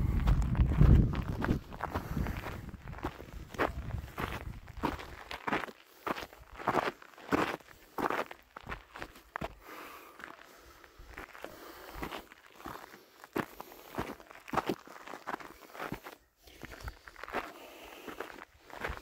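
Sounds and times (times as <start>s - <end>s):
low rumble: 0.0s - 4.7s
footsteps crunching on stony trail: 0.0s - 19.0s.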